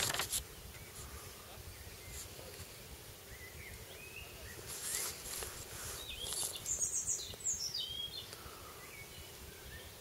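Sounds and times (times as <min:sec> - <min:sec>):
outdoor background noise: 0:00.0 - 0:10.0
songbird chirping: 0:00.4 - 0:10.0.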